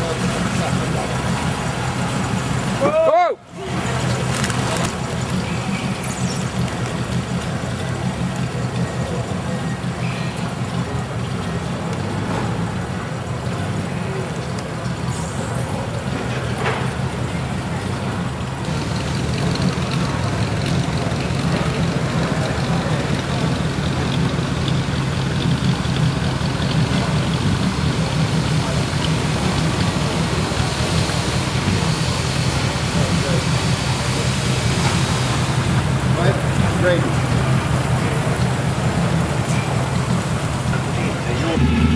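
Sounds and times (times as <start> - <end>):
car engine idling: 0.0 - 41.9.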